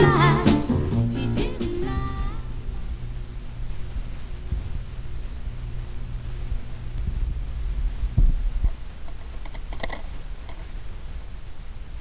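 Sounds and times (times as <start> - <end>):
record player hum: 0.0 - 12.0
low thumps: 6.4 - 8.8.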